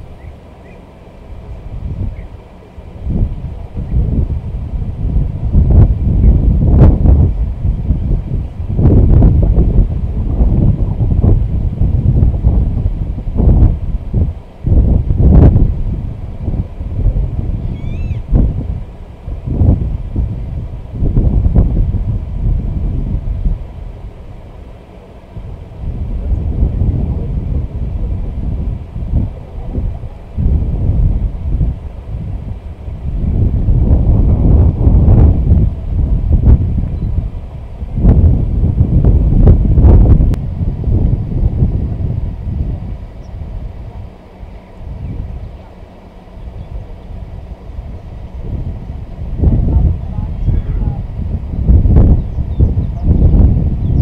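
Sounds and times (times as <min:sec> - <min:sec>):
wind buffeting microphone: 0:00.0 - 0:54.0
faint bird chirp: 0:00.2 - 0:00.9, 0:17.7 - 0:18.2.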